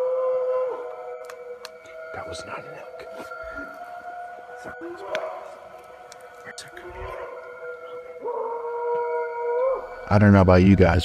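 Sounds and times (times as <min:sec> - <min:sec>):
animal howling: 0:00.0 - 0:11.0.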